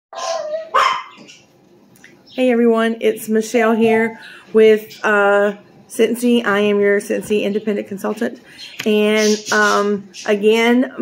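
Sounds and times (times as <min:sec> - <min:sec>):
dog barking: 0:00.2 - 0:01.2.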